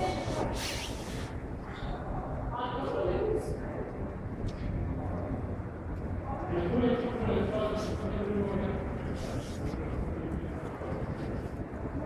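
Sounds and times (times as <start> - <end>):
faint voices: 0.0 - 12.0
low city rumble: 0.0 - 12.0.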